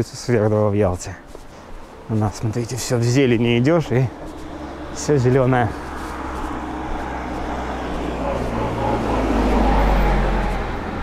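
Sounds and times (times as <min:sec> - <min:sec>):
tyre noise: 0:00.6 - 0:11.0
minibus engine hum: 0:01.0 - 0:11.0.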